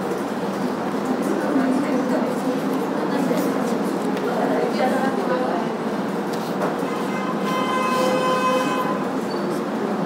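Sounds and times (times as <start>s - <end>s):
steady horn-like tone: 6.8s - 9.2s.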